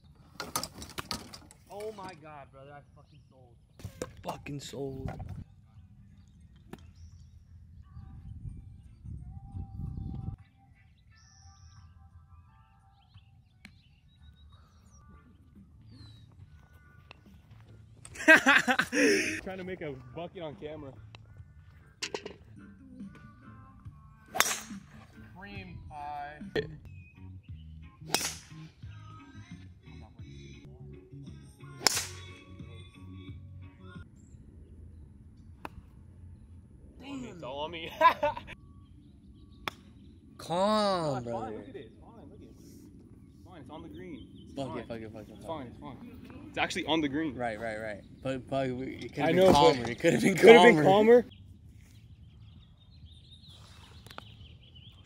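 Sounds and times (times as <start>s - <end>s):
birds calling and chirping: 0.0s - 23.4s, 26.7s - 28.8s, 33.9s - 55.0s
wind rumble on microphone: 4.9s - 10.6s
golf club striking ball: 24.3s - 25.0s, 31.8s - 32.3s.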